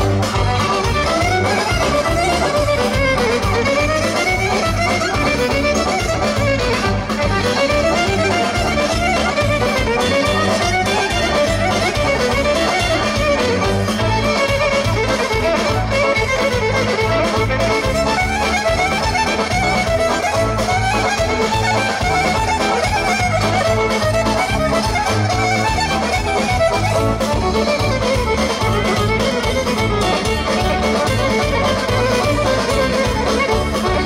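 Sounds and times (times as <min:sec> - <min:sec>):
folk dance music over loudspeakers: 0:00.0 - 0:34.0.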